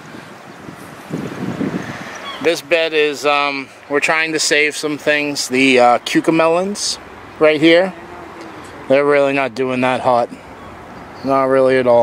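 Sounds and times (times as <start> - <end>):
wind buffeting microphone: 0.0 - 3.7.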